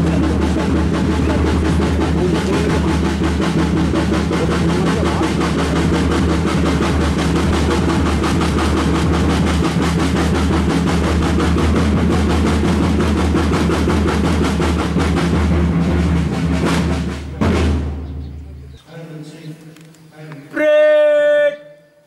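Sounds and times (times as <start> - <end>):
steady low drone: 0.0 - 18.7
drum roll: 0.0 - 18.8.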